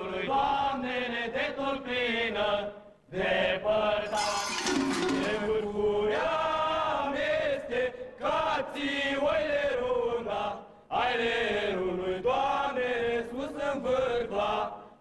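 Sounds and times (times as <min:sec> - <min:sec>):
men singing a carol: 0:00.0 - 0:14.9.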